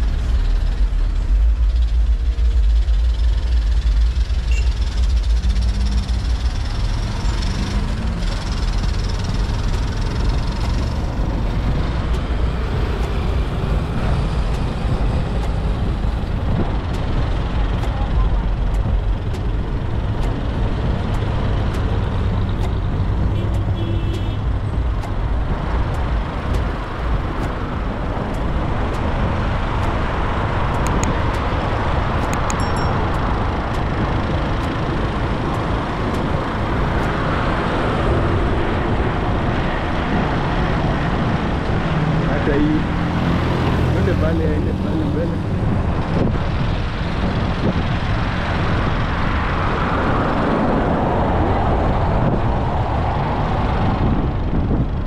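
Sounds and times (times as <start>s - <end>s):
car and truck engines running: 0.0s - 55.0s
tyres on the road: 0.0s - 55.0s.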